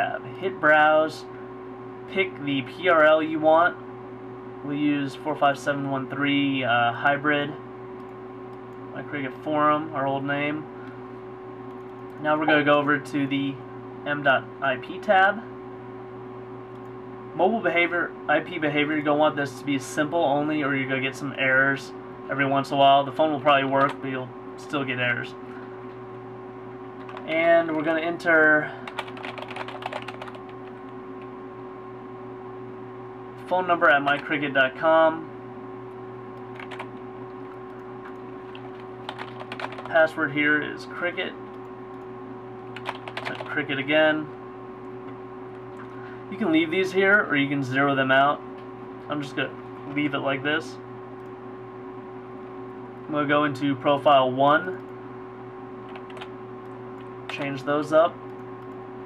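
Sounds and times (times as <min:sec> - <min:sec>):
steady hum: 0:00.0 - 0:59.0
fast typing on keyboard: 0:27.0 - 0:27.8, 0:28.8 - 0:30.8, 0:36.5 - 0:40.0, 0:42.7 - 0:43.6, 0:55.9 - 0:56.3.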